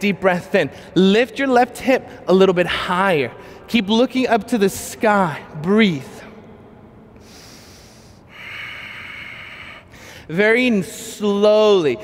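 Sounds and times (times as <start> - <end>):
person breathing close to microphone: 7.2 - 10.3.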